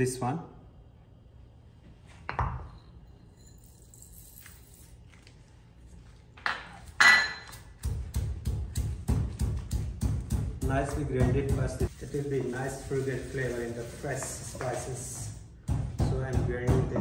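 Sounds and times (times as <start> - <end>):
pestle pounding in stone mortar: 7.4 - 11.9, 15.6 - 17.0.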